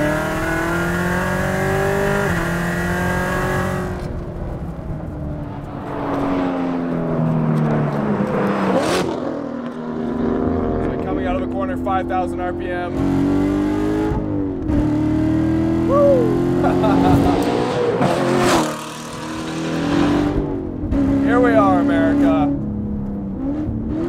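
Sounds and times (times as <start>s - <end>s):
car engine accelerating hard: 0.0s - 4.5s, 5.1s - 24.0s
rush of noise: 15.8s - 18.8s
person speaking: 21.2s - 22.4s.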